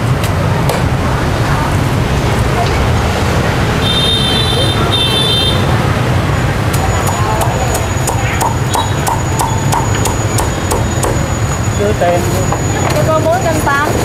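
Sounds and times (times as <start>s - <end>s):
street traffic rumble: 0.0s - 14.0s
short electronic beeps: 6.8s - 13.3s.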